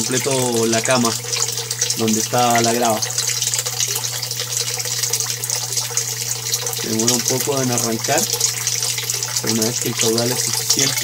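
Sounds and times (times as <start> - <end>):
water splashing from a pipe: 0.0 - 11.0.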